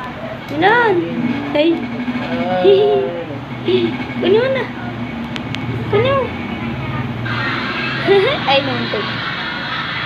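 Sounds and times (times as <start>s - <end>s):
broad rushing noise: 0.0s - 10.0s
steady low hum: 0.0s - 10.0s.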